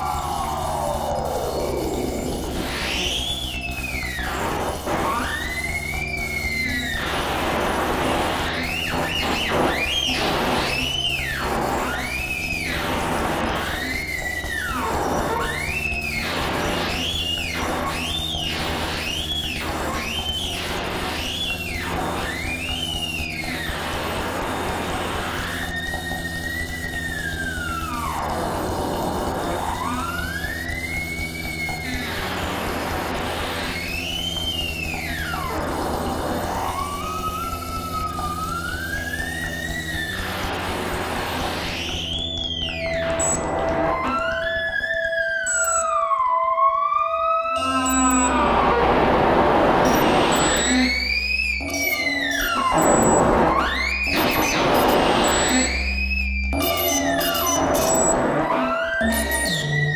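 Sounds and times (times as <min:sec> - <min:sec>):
steady low drone: 0:00.0 - 0:08.6
synthesized tones sweeping: 0:00.0 - 0:59.9.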